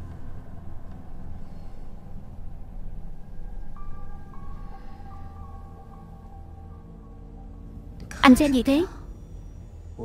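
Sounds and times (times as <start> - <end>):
ambient background score drone: 0.0 - 10.0.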